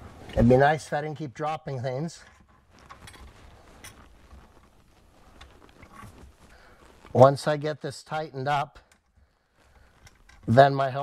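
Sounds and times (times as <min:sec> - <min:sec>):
faint clicks and knocks of handling: 0:02.2 - 0:07.2, 0:08.8 - 0:10.5.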